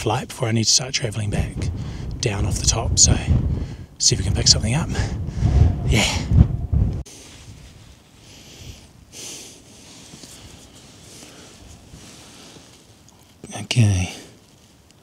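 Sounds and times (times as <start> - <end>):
steady wind hiss: 0.0 - 15.0
wind buffeting microphone: 0.8 - 8.0
soft puffs: 7.1 - 13.3.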